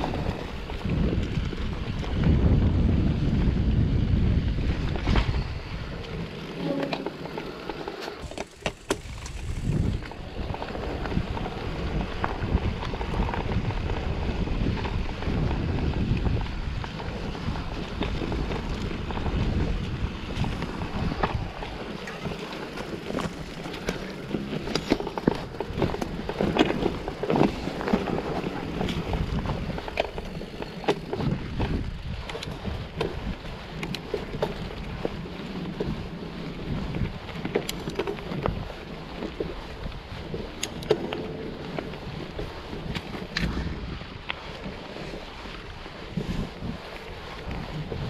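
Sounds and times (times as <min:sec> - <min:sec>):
bike clicks and rattles: 0:00.0 - 0:48.0
bike tyre noise on dirt: 0:00.0 - 0:48.0
wind rumbling on microphone: 0:00.0 - 0:48.0.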